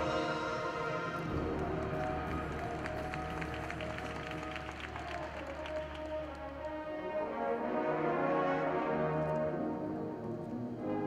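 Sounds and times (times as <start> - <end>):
marching band playing: 0.0 - 9.2.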